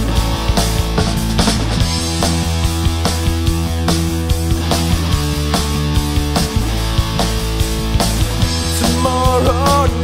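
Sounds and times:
instrumental rock music: 0.0 - 10.0.

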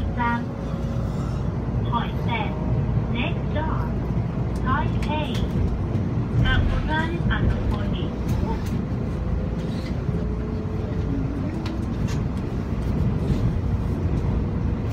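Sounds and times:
train wheels rumbling: 0.0 - 14.9.

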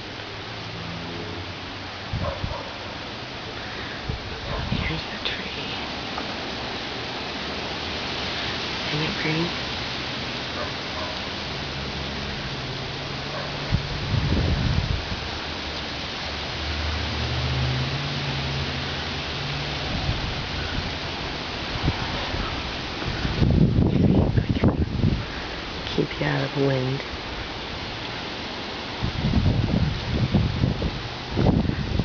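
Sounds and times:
wind rushing through leaves: 0.0 - 32.0
wind buffeting microphone: 2.0 - 2.8, 3.6 - 5.5, 12.8 - 15.4, 19.8 - 28.0, 28.9 - 32.0.

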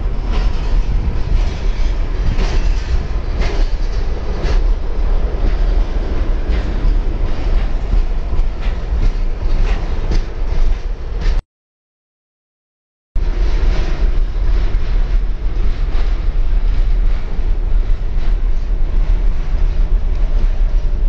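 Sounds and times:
steel wheels rumbling on rail: 0.0 - 11.4, 13.2 - 21.0
wheels clacking on rail joints: 0.0 - 11.4, 13.2 - 21.0.

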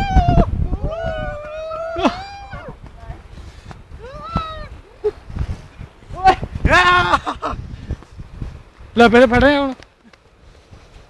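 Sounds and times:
young men whooping: 0.0 - 2.8, 4.0 - 5.2, 6.1 - 7.6.

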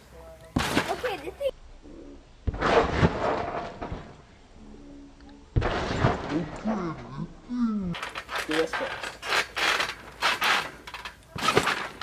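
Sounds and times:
trampoline springs creaking and clanking: 2.4 - 4.4, 5.0 - 12.0.

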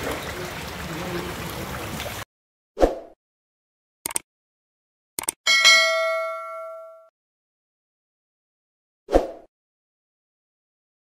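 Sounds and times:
short clicks: 4.0 - 4.3, 5.2 - 5.4
bright bell ding: 5.5 - 7.1.

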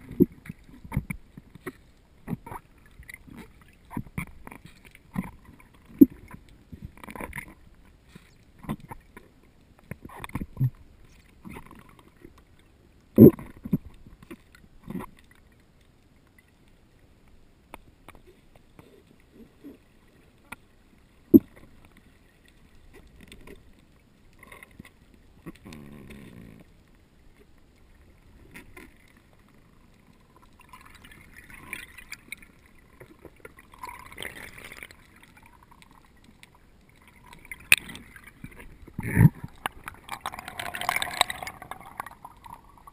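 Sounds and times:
muffled underwater water rumble: 0.0 - 42.9.

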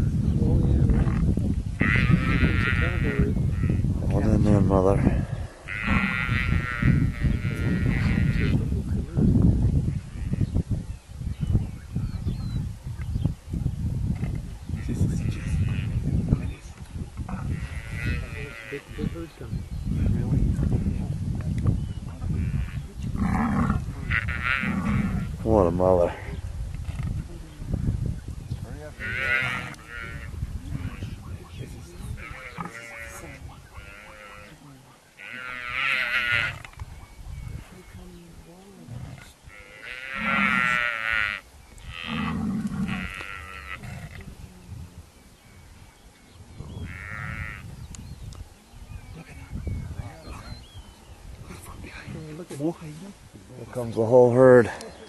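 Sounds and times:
lower animal calls: 32.1 - 36.8, 37.5 - 44.6, 46.6 - 47.8.

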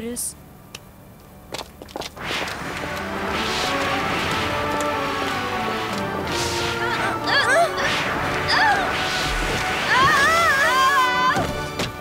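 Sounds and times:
magic whooshes: 2.2 - 11.0
twinkling curling glides: 2.2 - 11.6.

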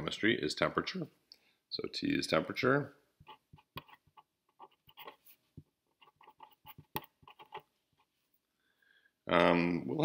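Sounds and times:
felt-tip marker writing on paper: 3.2 - 8.1.

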